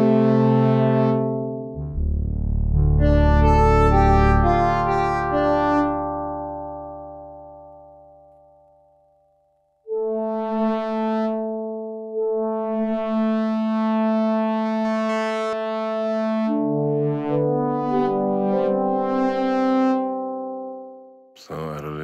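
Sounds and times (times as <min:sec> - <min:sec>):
synthesizer pad chords: 0:00.0 - 0:09.0, 0:09.9 - 0:22.0.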